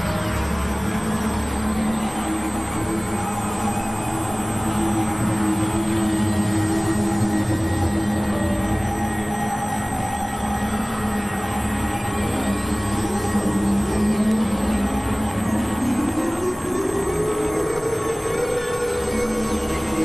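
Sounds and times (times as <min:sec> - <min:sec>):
sustained electronic drone tones: 0:00.0 - 0:20.0.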